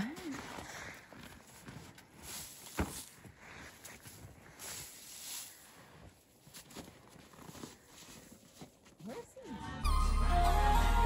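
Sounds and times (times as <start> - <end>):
music: 9.5 - 11.0.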